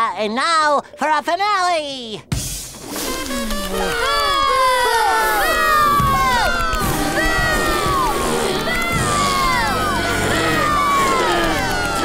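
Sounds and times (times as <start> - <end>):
cartoon children shouting: 3.7 - 12.0.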